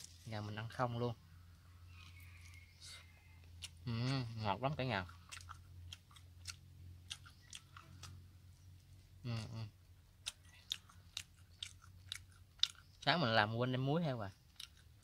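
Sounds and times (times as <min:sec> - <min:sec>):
person chewing crunchily: 0:01.9 - 0:13.4, 0:14.0 - 0:15.0.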